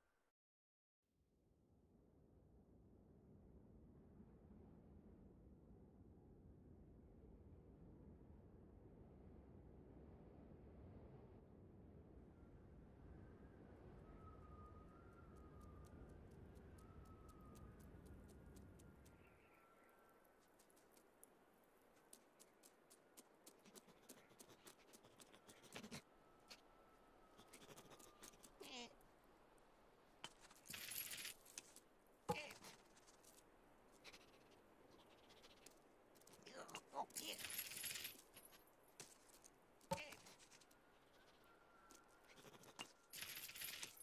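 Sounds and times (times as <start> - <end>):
paws pattering on snow: 15.4 - 26.0.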